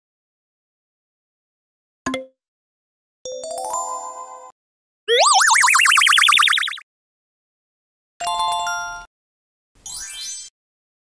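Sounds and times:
cartoon boing warbling tone: 5.1 - 6.8
cartoon chime: 5.1 - 6.8.

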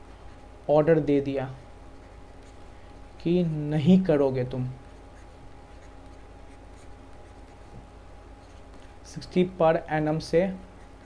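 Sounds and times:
stylus scratching on tablet: 0.0 - 2.7, 3.5 - 11.0
faint whine: 0.0 - 11.0
low electrical hum: 0.0 - 11.0.

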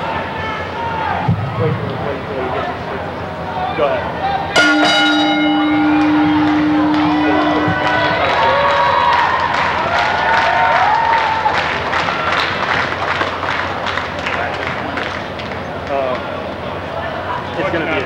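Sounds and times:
crowd shouting and yelling: 0.0 - 13.1
ring bell struck: 4.6 - 8.8.

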